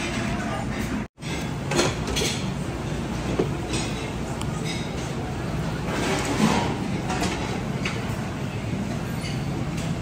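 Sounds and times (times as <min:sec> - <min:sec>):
busy cafeteria din: 0:00.0 - 0:10.0.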